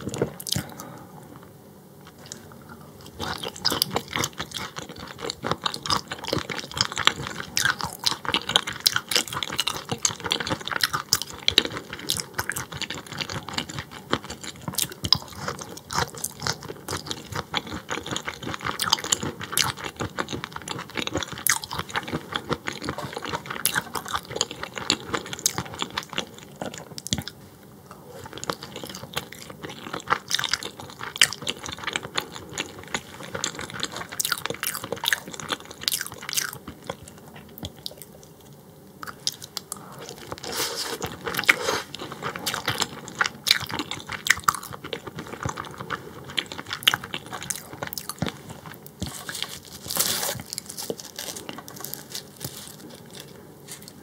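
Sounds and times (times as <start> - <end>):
wet crunchy chewing: 2.1 - 27.4, 28.2 - 54.0.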